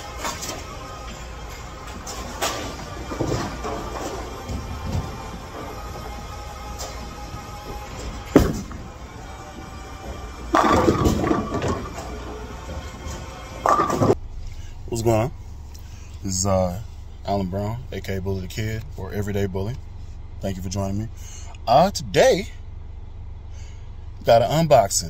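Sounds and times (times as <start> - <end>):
background music: 0.0 - 14.2
bowling pins clattering: 0.0 - 14.2
bowling ball thudding on lane: 1.8 - 14.2.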